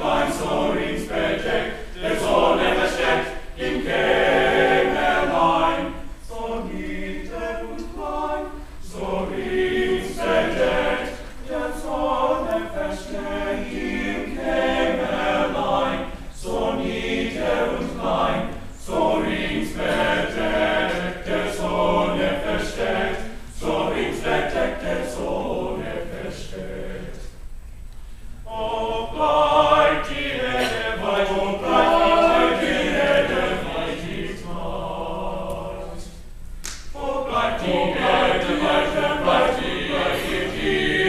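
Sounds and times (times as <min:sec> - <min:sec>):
male choir singing: 0:00.0 - 0:27.3, 0:28.4 - 0:36.2, 0:36.9 - 0:41.0.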